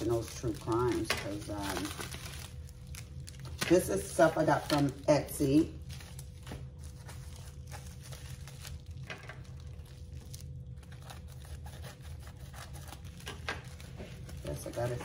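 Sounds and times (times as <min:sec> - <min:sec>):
steady low hum: 0:00.0 - 0:15.0
wrapping crinkling and rustling: 0:00.0 - 0:15.0.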